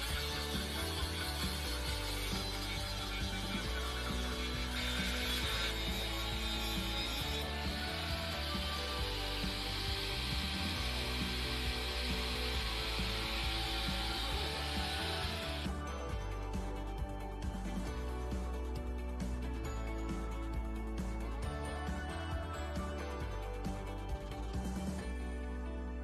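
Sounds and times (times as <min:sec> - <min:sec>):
angle grinder grinding metal: 0:00.0 - 0:16.3
background music: 0:00.0 - 0:26.0.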